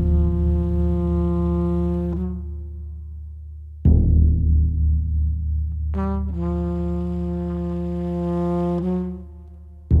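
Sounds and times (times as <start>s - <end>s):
trumpet long low tone: 0.0s - 3.7s, 5.9s - 10.0s
deep boom of large drum: 3.9s - 5.8s.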